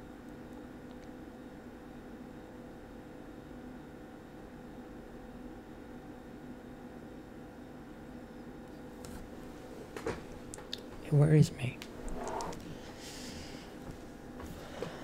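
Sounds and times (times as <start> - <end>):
faint constant hum: 0.0 - 15.0.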